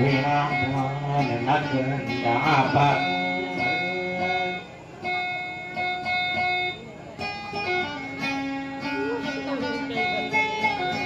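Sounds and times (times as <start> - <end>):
plucked lute notes: 0.0 - 11.0.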